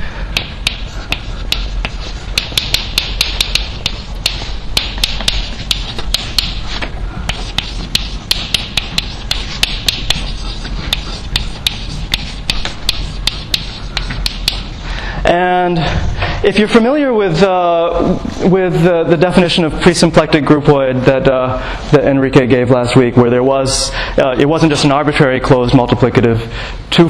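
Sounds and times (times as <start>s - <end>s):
low room hum: 0.0s - 27.0s
chalk tapping on blackboard: 0.4s - 14.8s.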